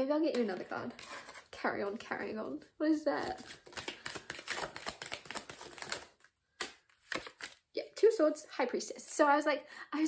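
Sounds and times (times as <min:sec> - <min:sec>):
cards shuffling clicks: 0:03.4 - 0:07.6.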